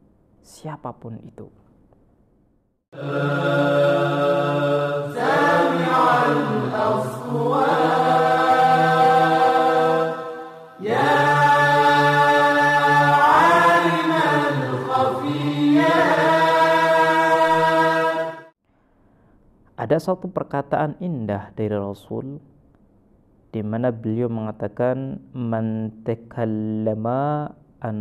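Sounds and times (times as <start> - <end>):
vocal chant with ornamented notes: 3.0 - 18.6.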